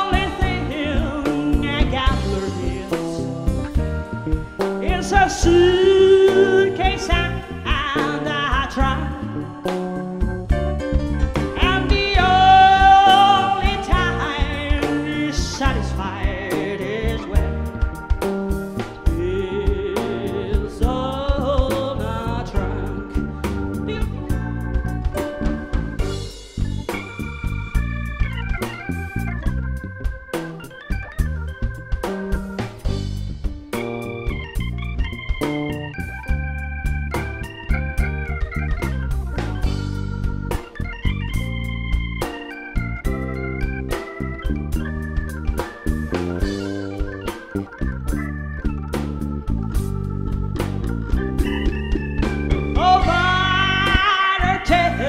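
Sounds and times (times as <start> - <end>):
drum kit: 0.0 - 55.0
electric bass: 0.0 - 55.0
organ-toned keyboard solo: 0.0 - 55.0.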